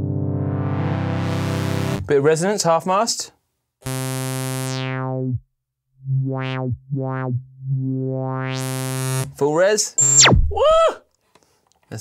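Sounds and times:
synthesizer low note filter sweep: 0:00.0 - 0:02.0, 0:03.9 - 0:05.4, 0:06.0 - 0:09.3, 0:10.0 - 0:10.6.

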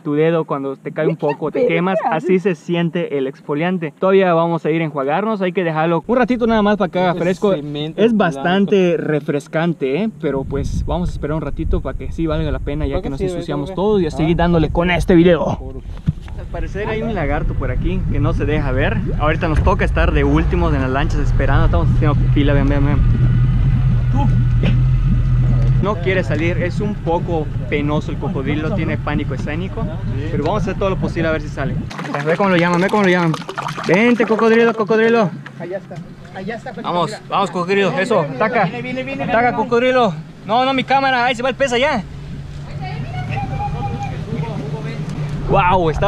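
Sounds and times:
outboard motor idling: 0:16.5 - 0:46.0.

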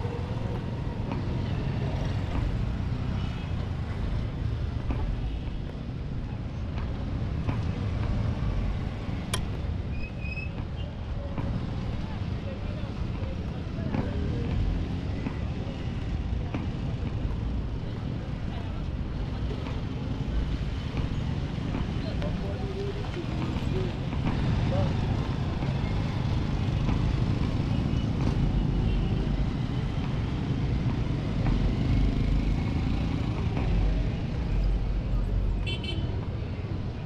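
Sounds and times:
traffic noise: 0:00.0 - 0:37.0
passers-by talking: 0:10.6 - 0:28.6, 0:29.2 - 0:37.0.

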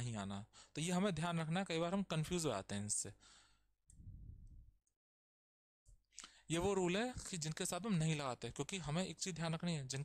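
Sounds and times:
soft low rumble: 0:03.9 - 0:04.8.

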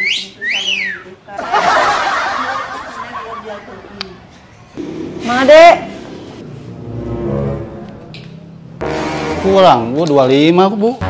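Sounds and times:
wolf whistle: 0:00.0 - 0:01.1.

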